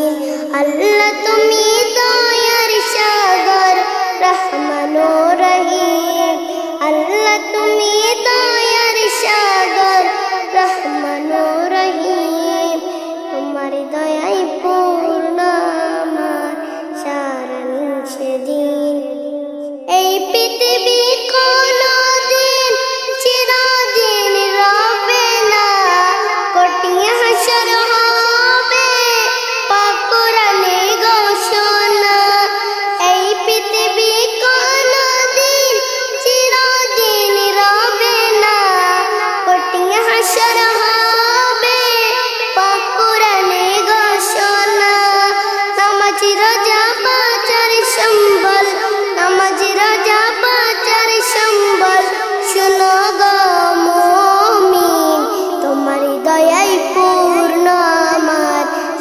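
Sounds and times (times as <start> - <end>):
child singing solo: 0.0 - 59.0.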